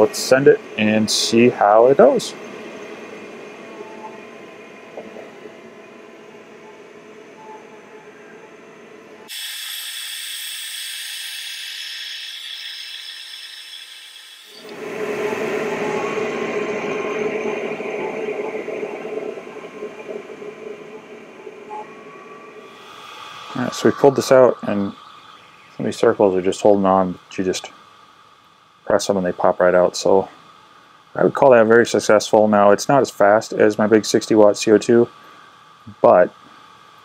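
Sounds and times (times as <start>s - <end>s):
laser engraver mechanical whir: 0.0s - 27.0s.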